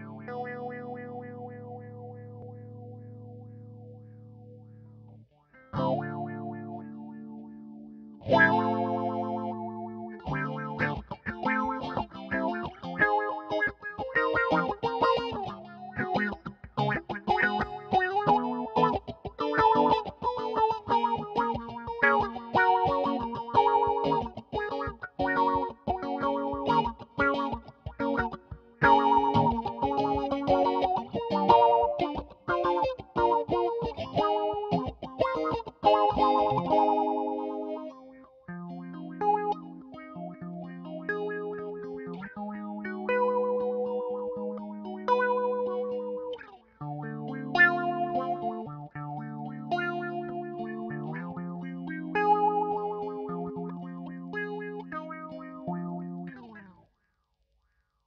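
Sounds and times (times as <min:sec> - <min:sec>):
filtered electric guitar: 0:00.0 - 0:56.8.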